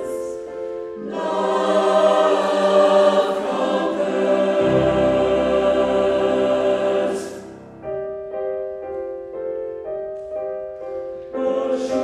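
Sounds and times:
choir singing held chords: 0.0 - 8.2, 11.2 - 12.0.

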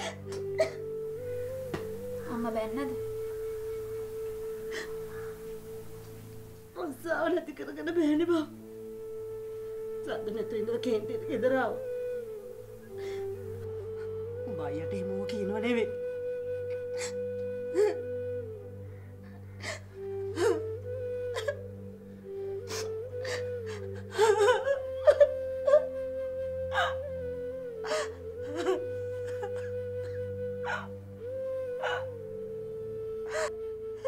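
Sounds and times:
woman crying: 0.0 - 0.8, 16.9 - 18.1, 19.6 - 21.7, 22.7 - 26.0, 26.7 - 27.1, 27.8 - 31.0, 31.8 - 32.2, 33.2 - 33.6
sustained music tone: 0.0 - 34.0
woman gasping sobs: 20.4 - 20.6, 22.7 - 25.8.

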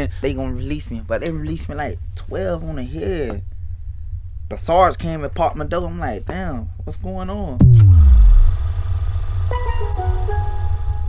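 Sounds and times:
heavy bass line: 7.5 - 11.0
high held melody notes: 9.4 - 11.0.

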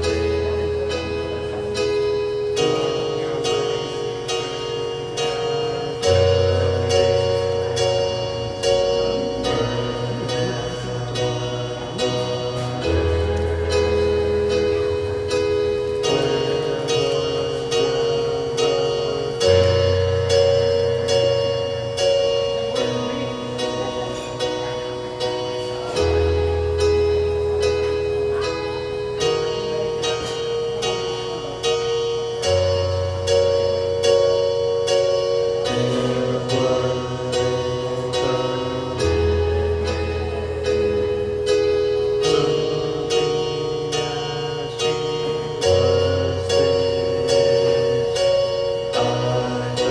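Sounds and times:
electronic keyboard chords: 0.0 - 49.9.

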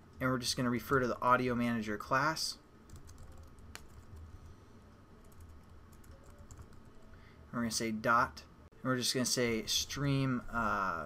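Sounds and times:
typing on computer keyboard: 2.9 - 4.2, 5.2 - 6.9.

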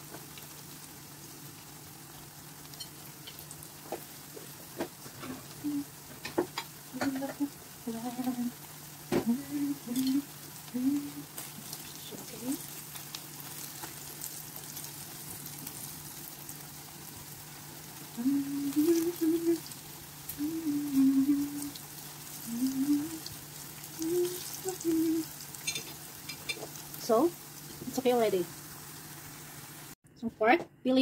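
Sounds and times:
faint oil crackles: 0.0 - 30.0
meat sizzling in hot oil: 0.0 - 30.0
person humming a tune: 5.2 - 6.0, 6.9 - 11.5, 18.1 - 21.8, 22.4 - 25.4.

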